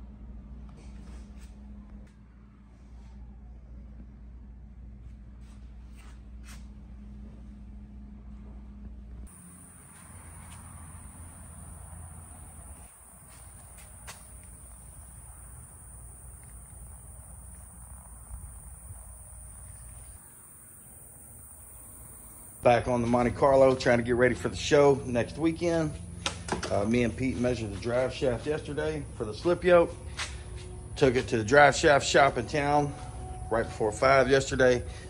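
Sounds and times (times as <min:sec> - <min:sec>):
steady low hum: 0:00.0 - 0:35.0
faint high-pitched whine: 0:09.3 - 0:26.0.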